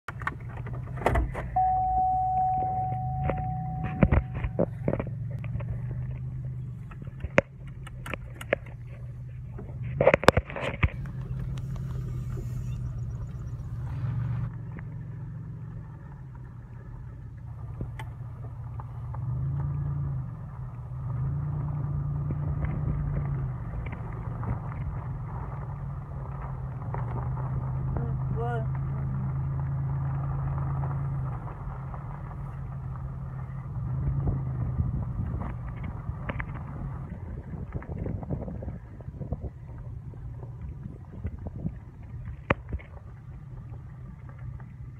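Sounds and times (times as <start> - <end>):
truck engine drone: 0.0 - 44.9.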